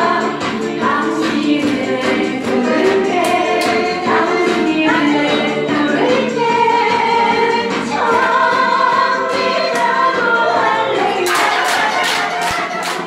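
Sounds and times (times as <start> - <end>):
several voices singing: 0.0 - 13.0
hand clapping in time: 0.4 - 4.7, 11.2 - 13.0.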